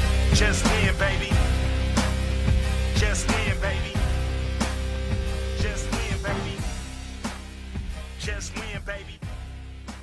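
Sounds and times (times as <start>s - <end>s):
music with heavy bass and drums: 0.0s - 10.0s.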